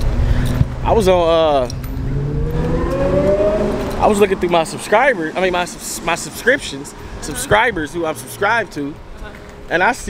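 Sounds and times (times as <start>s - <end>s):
car engine accelerating: 0.0s - 8.7s
low traffic rumble: 0.0s - 10.0s.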